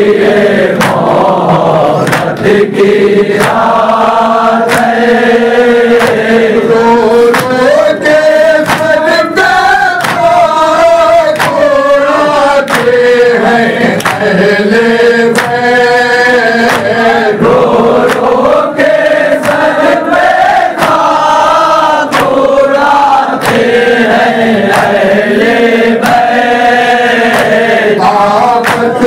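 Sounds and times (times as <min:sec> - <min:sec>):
men chanting in unison: 0:00.0 - 0:29.0
chest-beating slaps: 0:00.3 - 0:13.2, 0:13.8 - 0:14.4, 0:15.3 - 0:15.8, 0:16.6 - 0:29.0.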